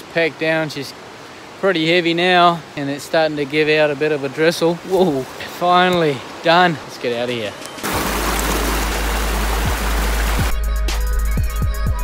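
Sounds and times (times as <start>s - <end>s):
river rushing over rocks: 0.0s - 10.6s
hip-hop beat with melody: 10.5s - 12.0s.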